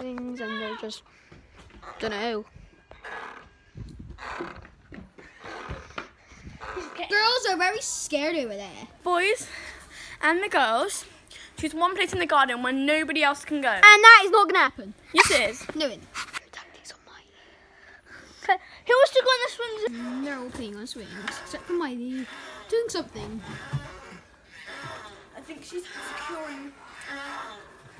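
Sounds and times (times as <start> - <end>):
person whispering: 16.4 - 17.4.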